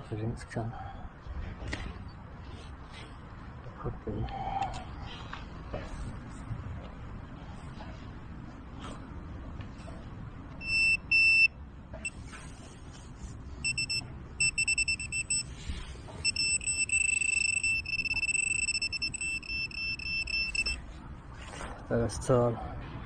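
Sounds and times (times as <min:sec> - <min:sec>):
metal detector probe beeping: 0:10.6 - 0:12.2, 0:13.6 - 0:20.9.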